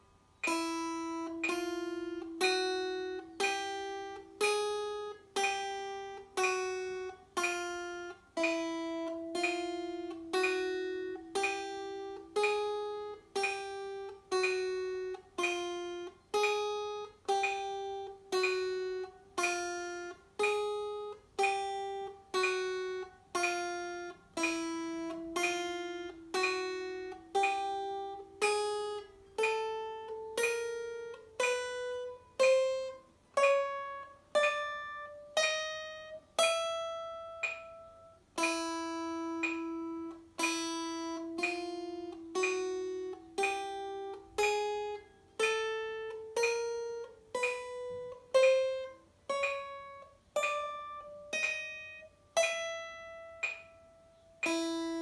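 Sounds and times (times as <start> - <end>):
acoustic guitar plucked notes: 0.0 - 55.0.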